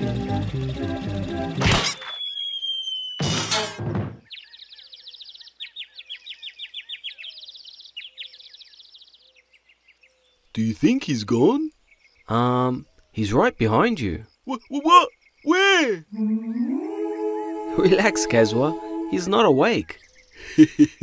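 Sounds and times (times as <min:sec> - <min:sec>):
falling whistle: 0:01.8 - 0:03.8
high bird-like tweeting: 0:01.9 - 0:03.3
loud crash thump: 0:03.2 - 0:04.2
cartoon chase music: 0:17.7 - 0:19.8.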